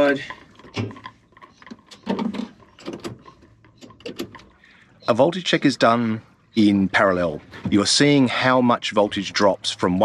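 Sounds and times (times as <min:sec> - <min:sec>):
small clicks and knocks: 0:00.2 - 0:04.7.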